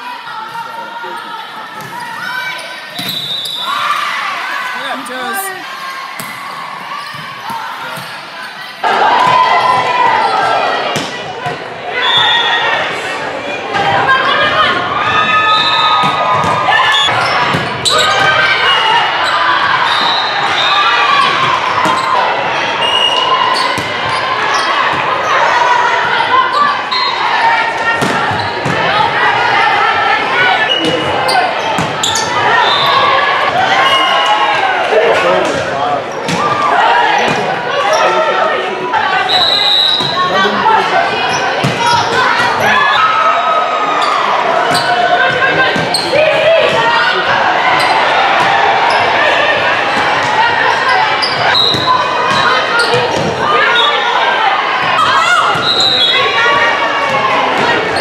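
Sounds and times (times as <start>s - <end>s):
players calling and shouting: 0.0s - 58.0s
volleyball slaps: 6.2s - 6.6s, 10.9s - 11.6s.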